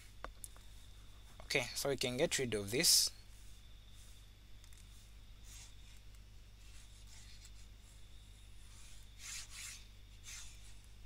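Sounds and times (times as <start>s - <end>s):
low electrical hum: 0.0s - 11.0s
pen rubbing on drawing tablet: 3.2s - 10.8s.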